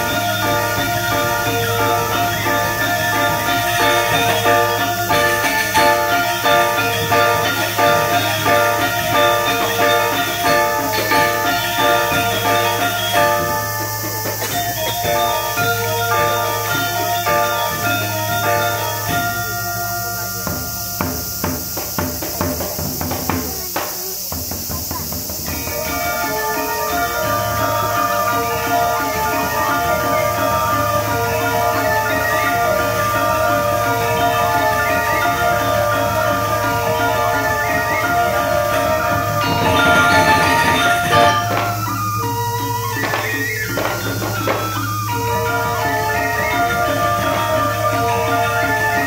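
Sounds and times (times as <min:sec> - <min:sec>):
gamelan music: 0:00.0 - 0:49.0
sharp percussive strokes: 0:00.0 - 0:49.0.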